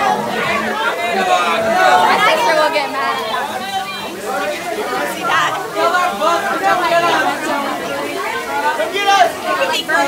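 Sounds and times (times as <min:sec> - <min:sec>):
crowd of young people talking: 0:00.0 - 0:10.0.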